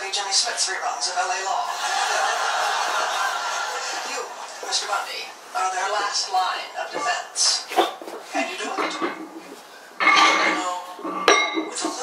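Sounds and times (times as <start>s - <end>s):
metal weight plates clanking: 8.6s - 12.0s.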